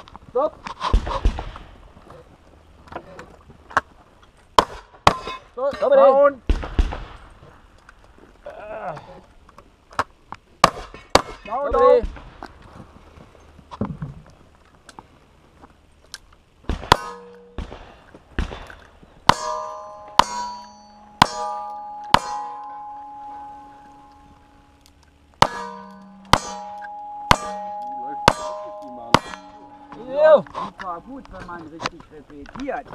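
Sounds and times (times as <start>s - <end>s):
steel target ringing: 16.9s - 17.6s, 19.3s - 31.2s.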